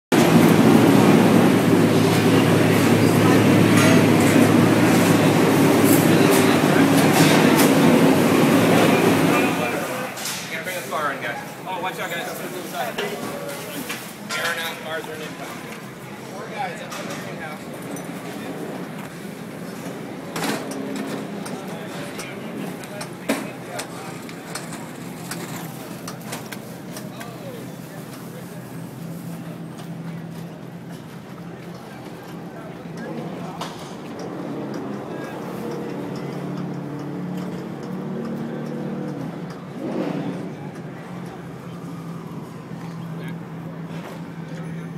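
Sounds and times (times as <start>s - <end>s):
people chattering: 0.1s - 44.9s.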